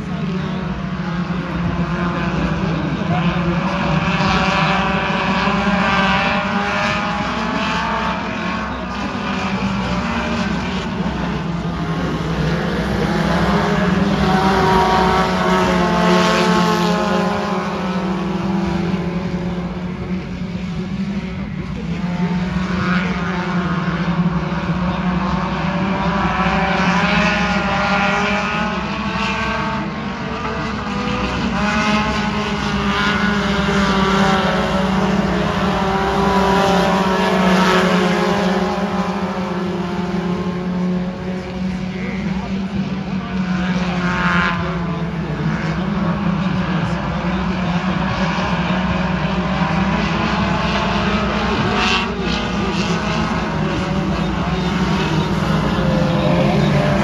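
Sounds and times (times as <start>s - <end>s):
race car engines passing: 0.0s - 57.0s.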